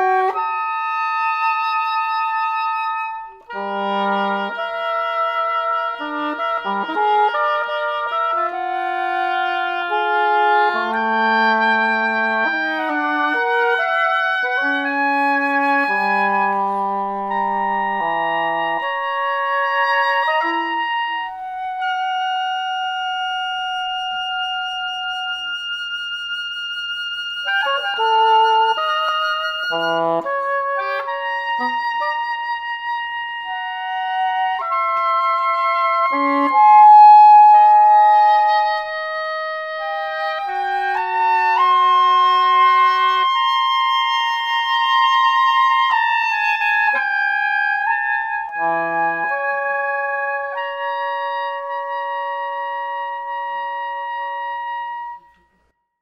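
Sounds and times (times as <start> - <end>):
oboe duet: 0.0 - 55.7.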